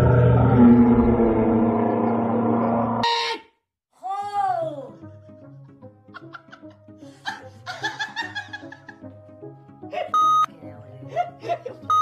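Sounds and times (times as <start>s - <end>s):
person laughing: 6.1s - 9.1s.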